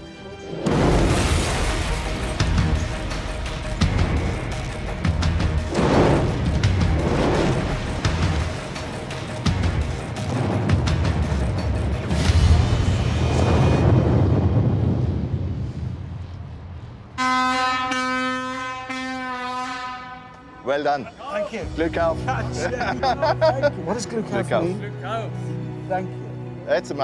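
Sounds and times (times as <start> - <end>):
underground blast rumble: 0.7 - 17.1
steady horn: 17.2 - 20.7.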